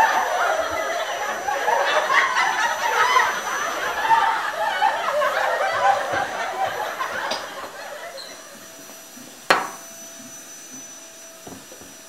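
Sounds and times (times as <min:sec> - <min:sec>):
studio audience laughing: 0:00.0 - 0:09.1.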